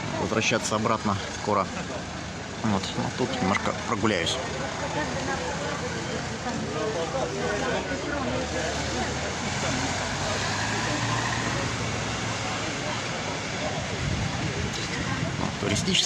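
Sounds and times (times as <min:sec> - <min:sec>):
cars passing on wet street: 0:00.0 - 0:16.0
people talking: 0:00.0 - 0:16.0.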